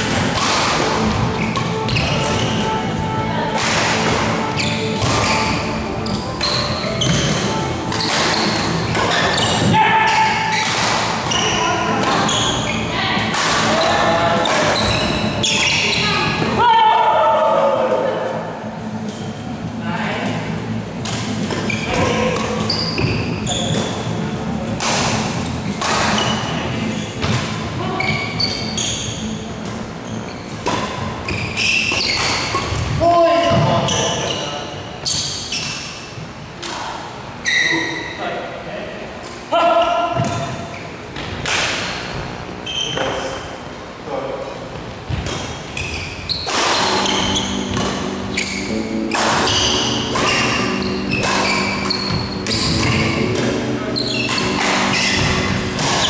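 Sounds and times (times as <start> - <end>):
racket striking shuttlecock: 0.1 - 2.7, 3.5 - 4.4, 5.0 - 5.5, 6.4 - 11.4, 24.8 - 26.4, 46.4 - 56.0.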